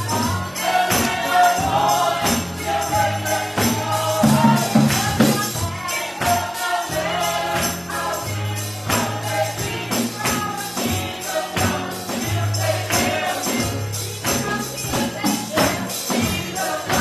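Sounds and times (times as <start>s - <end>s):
band with steady beat: 0.0s - 17.0s
gospel vocal group singing: 0.0s - 17.0s
tambourine shaking: 0.0s - 17.0s.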